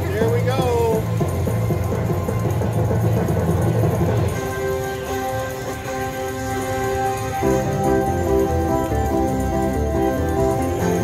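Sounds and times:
slot machine win jingle: 0.0 - 11.0.

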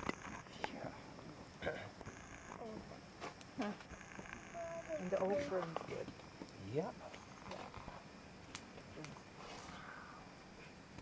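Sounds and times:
wood fire crackling: 1.5 - 9.7.

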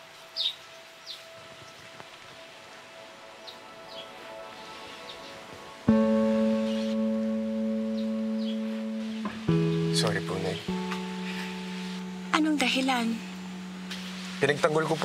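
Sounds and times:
acoustic guitar chord ringing: 5.8 - 15.0
soft held music bed: 5.8 - 15.0.

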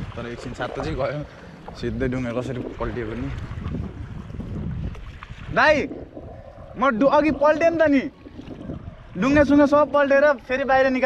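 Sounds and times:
wind rumble on microphone: 0.0 - 10.9.

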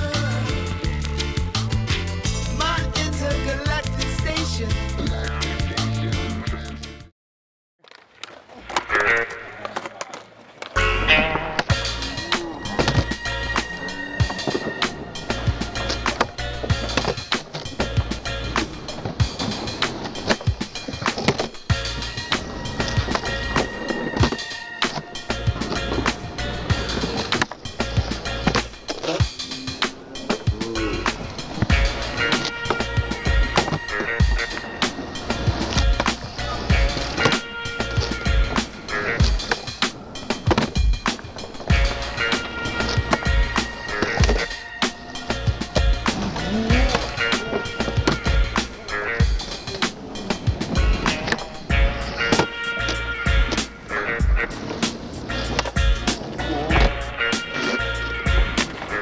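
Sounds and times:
music with steady beat: 0.0 - 7.1, 10.8 - 59.0
skateboard wheels rolling: 7.8 - 30.5, 31.1 - 59.0
skateboard tails popping: 7.8 - 59.0
skateboards landing knocks: 31.6 - 38.6.

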